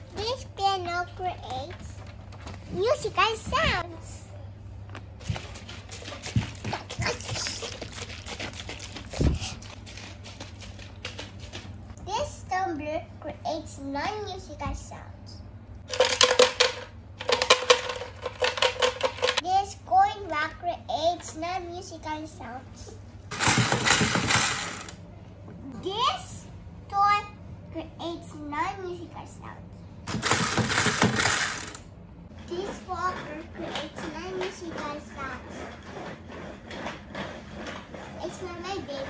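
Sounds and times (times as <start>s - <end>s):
steady low hum: 0.0s - 39.0s
toy gears ratcheting clatter: 23.3s - 25.0s, 30.1s - 31.8s.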